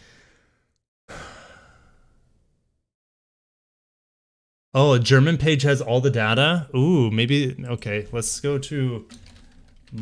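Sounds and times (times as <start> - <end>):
man sighing: 1.1 - 2.2.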